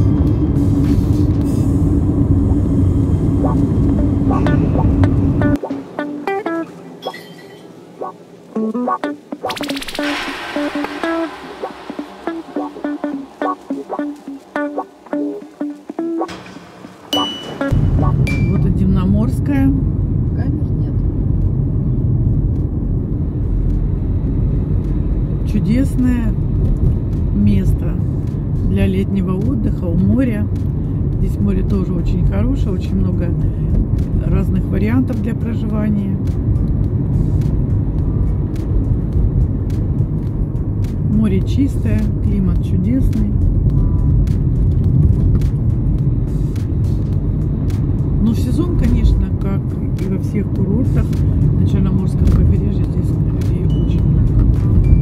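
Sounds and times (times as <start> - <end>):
car road and engine rumble: 0.0 - 9.3, 10.0 - 55.0.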